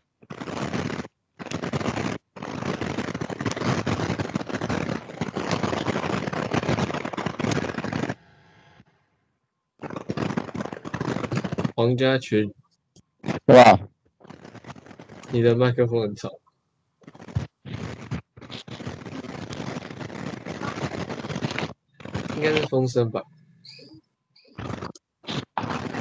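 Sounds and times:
rustling crackling microphone noise: 0.0s - 8.3s, 9.8s - 12.4s, 13.2s - 16.4s, 17.0s - 26.0s.

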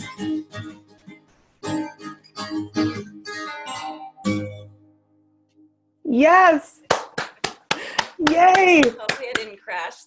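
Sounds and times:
acoustic guitar strummed: 0.0s - 5.1s.

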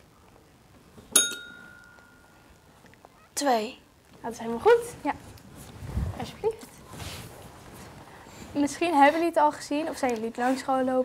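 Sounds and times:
quiz bell ding: 1.2s - 2.3s.

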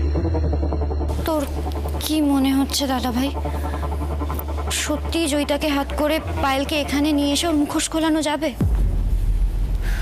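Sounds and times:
background music with low drone: 0.0s - 10.0s
dialogue: 1.1s - 8.7s.

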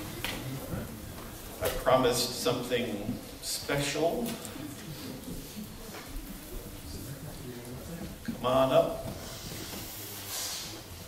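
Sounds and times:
faint hissing rustle: 0.0s - 11.0s.

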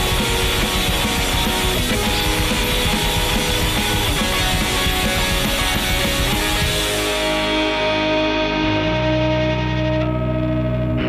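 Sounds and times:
rock music with guitar and drums: 0.0s - 11.0s.

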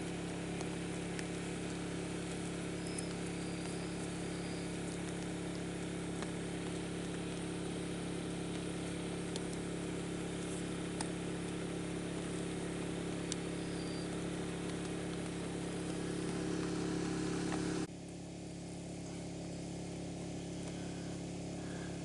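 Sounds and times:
small engine droning: 0.0s - 22.0s.

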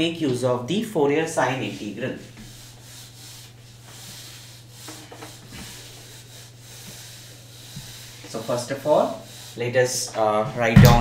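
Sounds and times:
duster scrubbing whiteboard: 0.3s - 11.0s.

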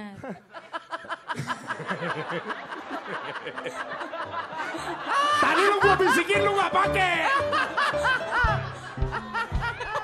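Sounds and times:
man laughing heartily: 0.2s - 10.0s.

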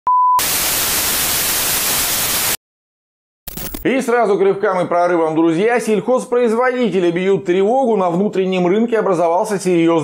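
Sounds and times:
television static hiss: 0.4s - 2.6s.

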